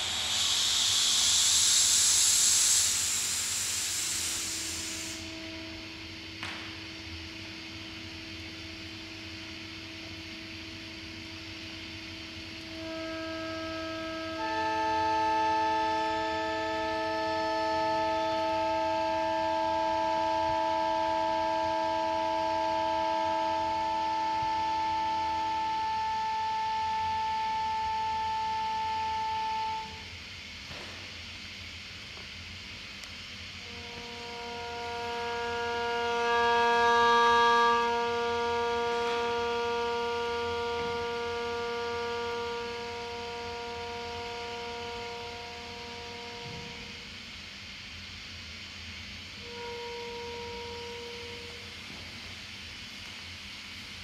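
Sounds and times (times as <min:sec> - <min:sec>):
sustained drone tones: 0:00.0 - 0:07.6
air hissing: 0:00.0 - 0:08.1.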